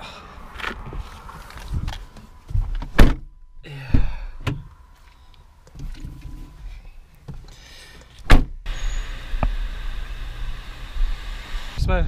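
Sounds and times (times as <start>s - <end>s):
car door shutting: 2.5s - 4.6s, 8.2s - 9.6s.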